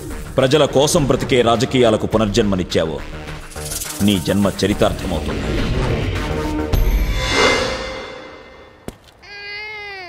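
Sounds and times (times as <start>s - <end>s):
music: 0.0s - 8.8s.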